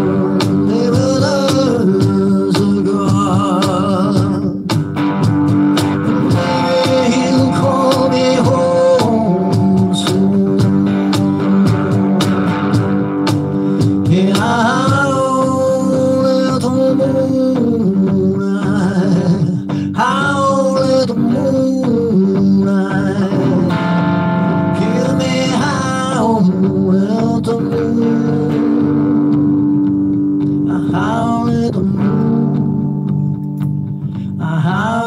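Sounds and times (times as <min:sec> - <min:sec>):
electric blues guitar: 0:00.0 - 0:35.0
looped backing chords: 0:00.0 - 0:35.0.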